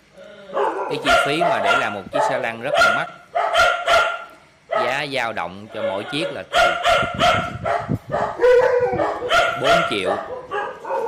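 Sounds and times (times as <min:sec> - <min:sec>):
dog whining and yipping: 0:08.1 - 0:09.6.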